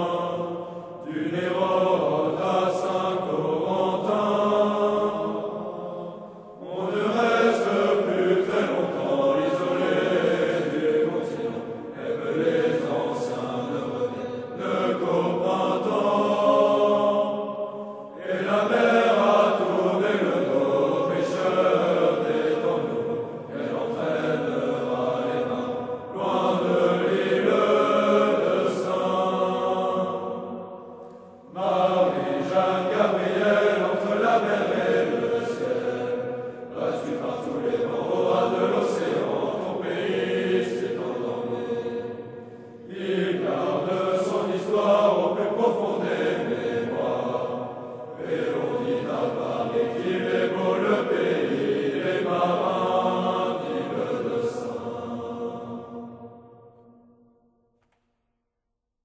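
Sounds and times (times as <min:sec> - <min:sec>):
group singing military song: 0:00.0 - 0:56.9.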